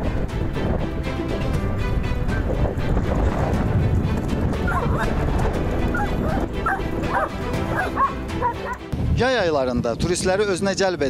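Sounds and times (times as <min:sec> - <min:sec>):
background music: 0:00.0 - 0:11.0
dog yipping: 0:04.6 - 0:05.2, 0:05.9 - 0:08.8.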